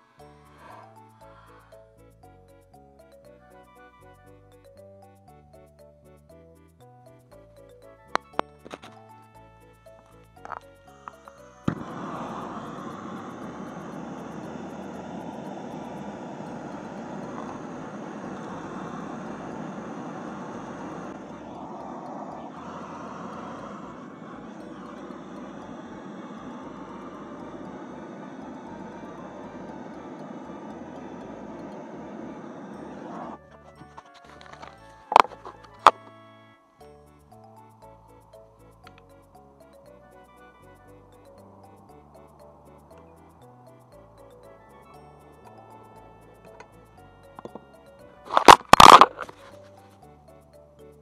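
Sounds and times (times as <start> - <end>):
gas torch burning with steady hiss: 10.4 - 33.4
gas torch igniter click: 11.7 - 28.5, 48.3 - 49.3.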